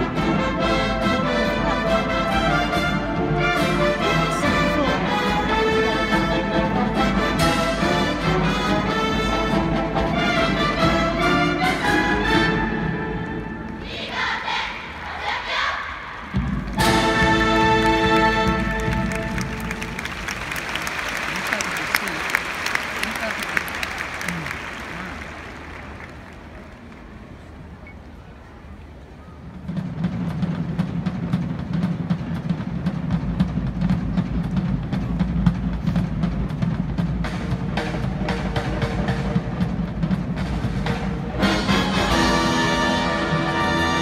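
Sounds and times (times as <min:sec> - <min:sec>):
marching band brass and drums: 0:00.0 - 0:44.0
crowd applause: 0:16.3 - 0:27.8.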